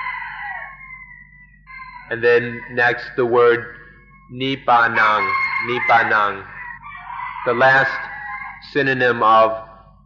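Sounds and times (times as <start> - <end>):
rooster crowing: 0.0 - 3.9, 4.7 - 9.7
low steady hum: 0.0 - 10.0.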